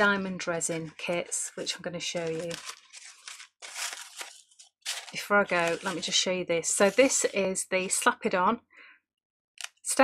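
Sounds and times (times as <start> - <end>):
stiff card scraping and rustling: 0.6 - 6.1.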